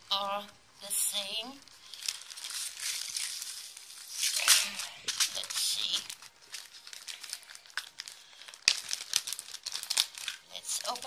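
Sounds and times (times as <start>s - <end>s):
plastic bags crinkling: 1.6s - 11.0s.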